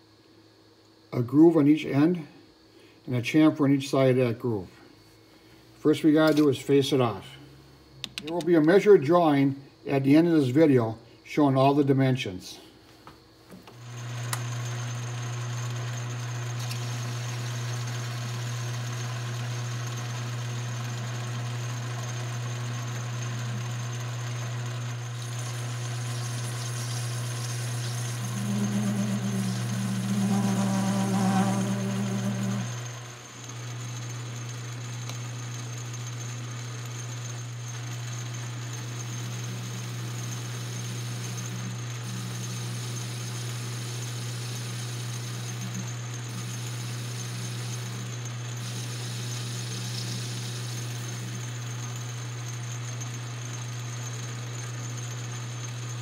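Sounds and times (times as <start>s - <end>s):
lathe motor humming: 13.7s - 53.7s
lathe tool cutting metal: 21.8s - 52.1s.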